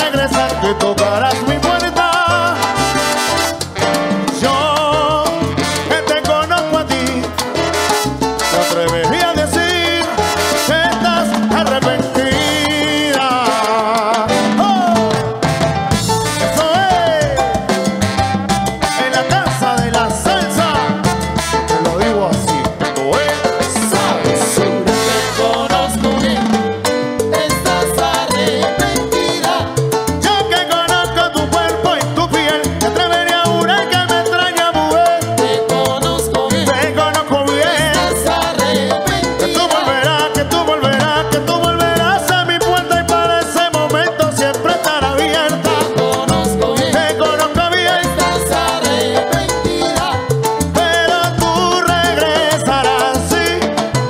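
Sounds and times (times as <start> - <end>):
salsa band playing: 0.0 - 54.0.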